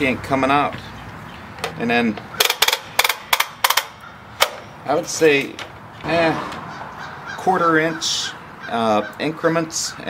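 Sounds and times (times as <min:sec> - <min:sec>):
ladder leg ratcheting clicks: 0:01.6 - 0:05.8.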